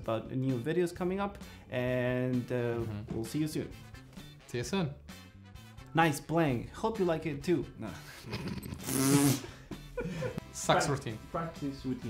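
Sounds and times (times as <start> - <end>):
man laughing: 8.0 - 10.4.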